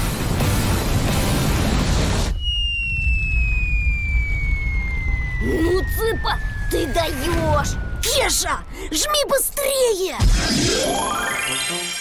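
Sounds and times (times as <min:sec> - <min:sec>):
falling whistle: 0:02.3 - 0:08.7.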